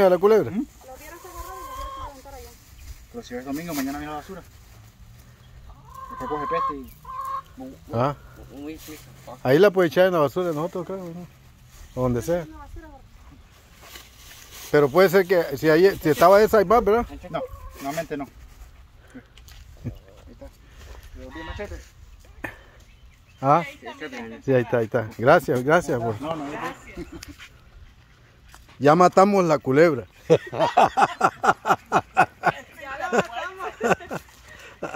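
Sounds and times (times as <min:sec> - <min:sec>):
poultry calling: 0:00.8 - 0:02.4, 0:05.3 - 0:08.6, 0:17.1 - 0:18.1, 0:19.9 - 0:22.8
goose calling: 0:05.8 - 0:08.0.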